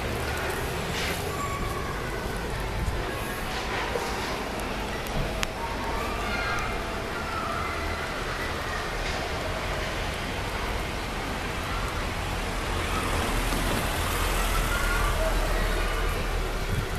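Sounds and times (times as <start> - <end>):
faint voices: 0.0 - 16.9
street traffic hum: 0.0 - 16.9.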